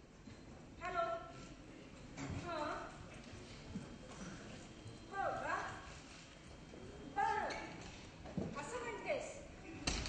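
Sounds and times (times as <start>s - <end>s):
faint stage room noise: 0.0s - 10.0s.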